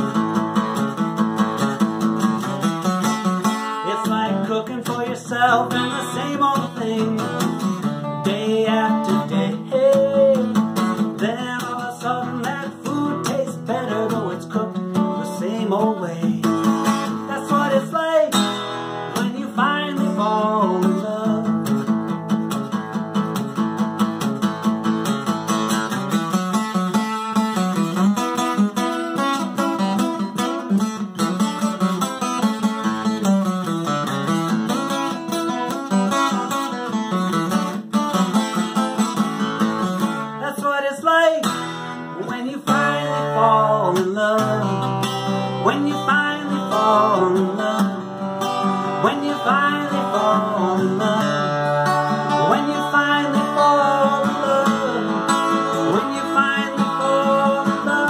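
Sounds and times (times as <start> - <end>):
acoustic guitar strummed: 0.0 - 58.0
man singing: 3.4 - 22.0, 35.1 - 37.0, 40.0 - 58.0.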